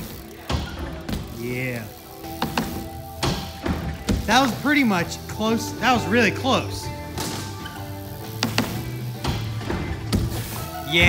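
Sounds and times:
bike thumping on ramps: 0:00.0 - 0:04.9, 0:06.9 - 0:11.0
background music: 0:00.0 - 0:11.0.

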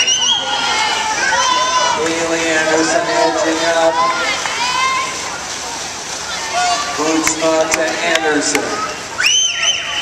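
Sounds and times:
poolside noise: 0:00.0 - 0:10.0
swimmers splashing water: 0:00.0 - 0:10.0.

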